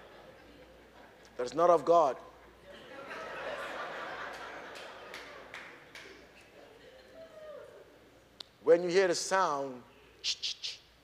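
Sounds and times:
congregation murmuring and chuckling: 0:00.0 - 0:01.4, 0:02.4 - 0:07.9
sharp hand claps: 0:04.7 - 0:06.3.

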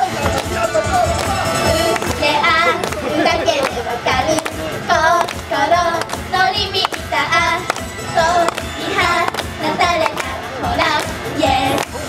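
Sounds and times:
female voices singing pop song: 0:01.0 - 0:12.0.

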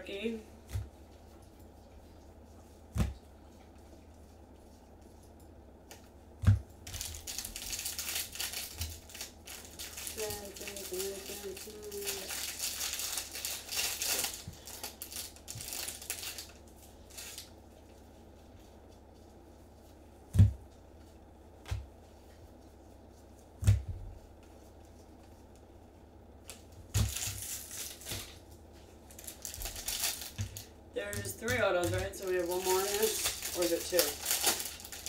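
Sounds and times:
foil wrapper crinkling and tearing: 0:06.8 - 0:17.5, 0:26.4 - 0:28.4, 0:29.1 - 0:35.0.

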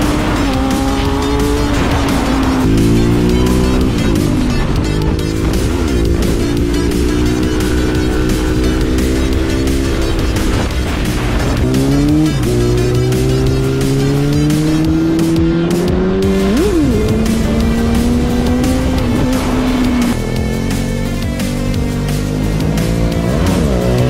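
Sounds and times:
motorcycle engine accelerating: 0:00.0 - 0:24.0.

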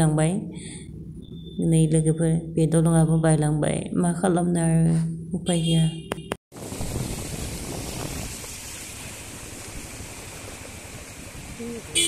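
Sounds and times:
wind on microphone: 0:06.6 - 0:08.6
floodwater rushing across road: 0:06.6 - 0:12.0.

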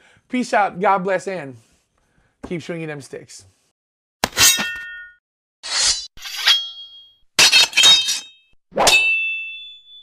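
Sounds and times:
metal blades clashing: 0:04.2 - 0:10.0.

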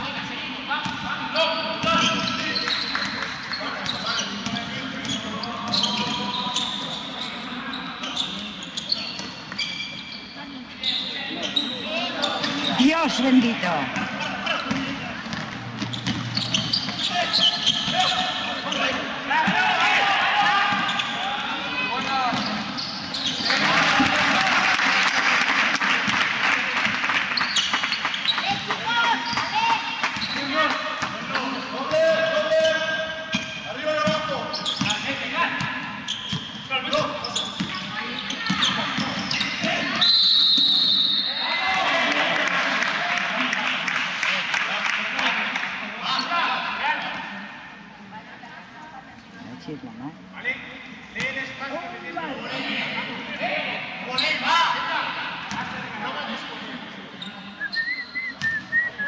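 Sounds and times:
basketball bouncing on court: 0:01.8 - 0:06.3, 0:13.8 - 0:17.1
players and spectators shouting: 0:17.0 - 0:22.3.

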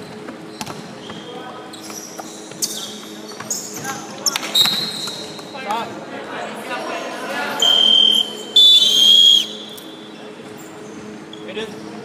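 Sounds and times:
shoe squeaks: 0:00.5 - 0:05.4
referee's whistle blasts: 0:07.6 - 0:09.8.

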